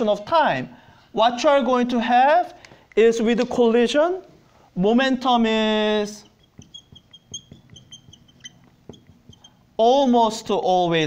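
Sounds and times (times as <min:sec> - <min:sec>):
marker squeaking on whiteboard: 0:05.4 - 0:09.8
marker tip tapping: 0:06.3 - 0:09.6.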